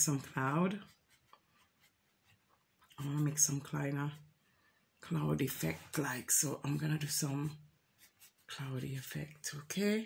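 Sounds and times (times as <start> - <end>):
paintbrush scratching canvas: 0.0 - 4.3, 7.9 - 9.1.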